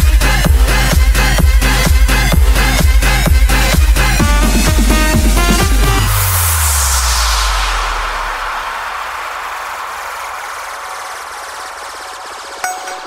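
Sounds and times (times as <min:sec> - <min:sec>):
sung melody: 0:04.2 - 0:06.5, 0:12.6 - 0:13.0
deep bass note: 0:04.2 - 0:07.8
hissing noise wash: 0:06.0 - 0:13.0.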